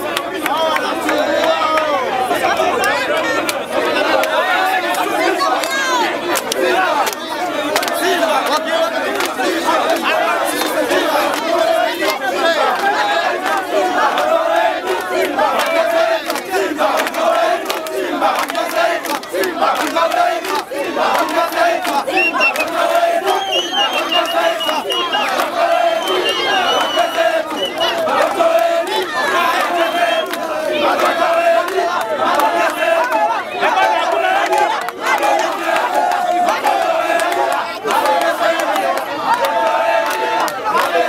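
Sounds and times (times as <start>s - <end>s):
crowd of fans calling out: 0.0s - 41.0s.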